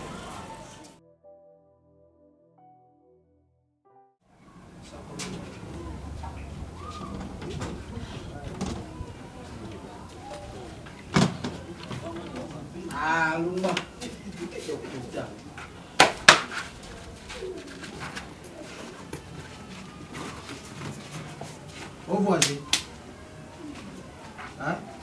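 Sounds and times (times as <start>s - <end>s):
bird cooing: 16.9s - 19.0s.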